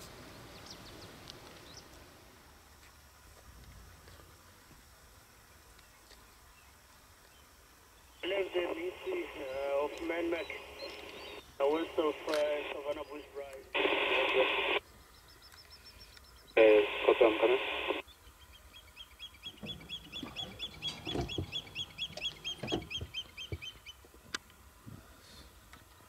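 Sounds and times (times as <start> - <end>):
radio static burst: 8.2 - 14.8, 16.6 - 18.0
tinny two-way radio voice: 8.2 - 14.8, 16.6 - 18.0.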